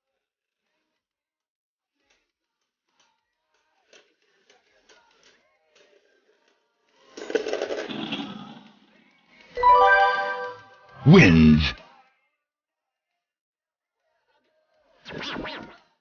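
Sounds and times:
short musical jingle: 9.6 - 11.3.

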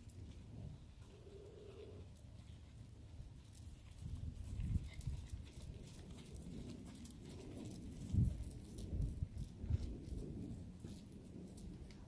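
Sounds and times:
hoofbeats on sand: 3.4 - 12.0.

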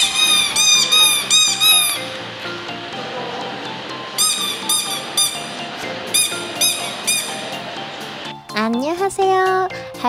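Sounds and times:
rubber duck squeaking: 0.0 - 2.1, 4.2 - 5.5, 6.2 - 7.5
background music: 0.0 - 10.0.

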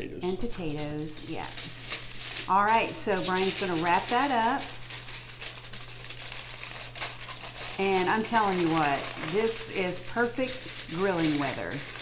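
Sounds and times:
aluminium foil crinkling: 0.3 - 12.0.

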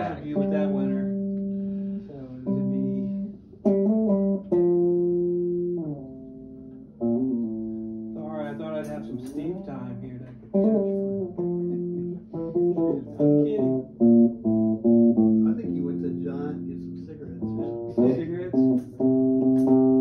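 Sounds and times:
guitar playing single notes: 0.0 - 20.0.

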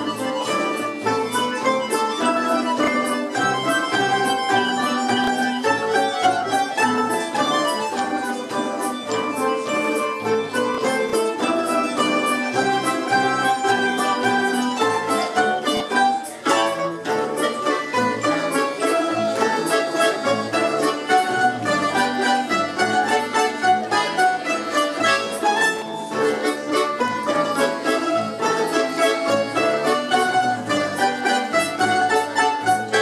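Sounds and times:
plucked string orchestra playing: 0.0 - 33.0.

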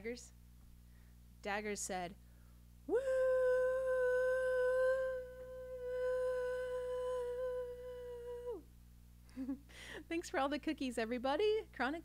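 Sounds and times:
woman singing a steady woo: 2.9 - 8.7.

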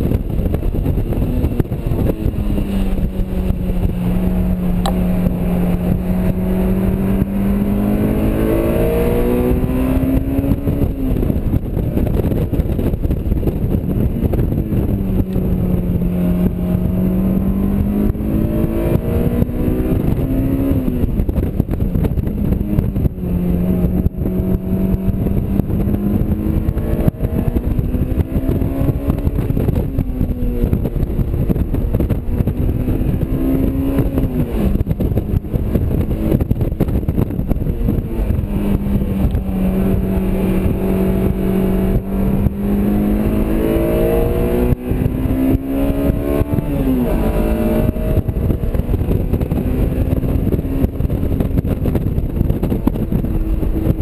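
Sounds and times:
car engine revving: 0.0 - 54.0
wind and road noise: 0.0 - 54.0.

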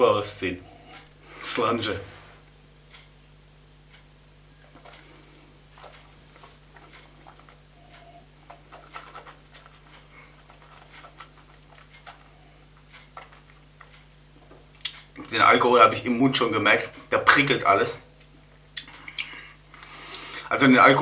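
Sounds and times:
low steady hum: 0.0 - 21.0
wet mouth clicks and smacks: 14.8 - 15.1, 18.7 - 19.4
breathing: 19.2 - 20.5.

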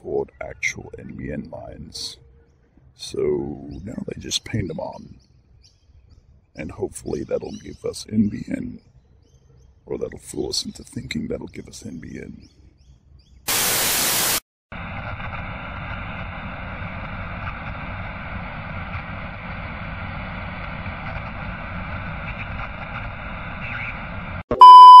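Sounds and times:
static hiss: 13.5 - 24.4
high test tone beep: 24.5 - 25.0.

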